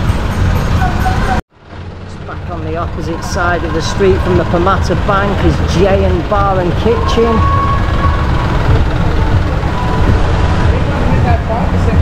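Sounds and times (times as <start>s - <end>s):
motor vehicles passing: 0.0s - 12.0s.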